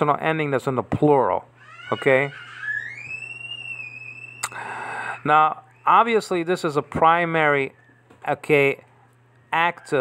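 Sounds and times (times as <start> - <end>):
high-pitched whistle-like tone: 2.8 - 4.6.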